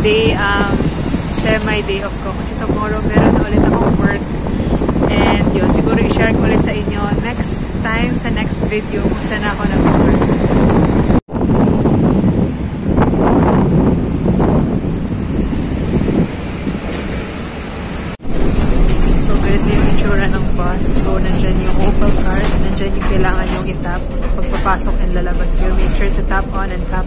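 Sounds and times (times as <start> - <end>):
people's voices: 0.0 - 10.3, 18.6 - 27.0
bus engine rumble: 0.0 - 27.0
street noise: 0.0 - 27.0
wind buffeting microphone: 0.0 - 27.0.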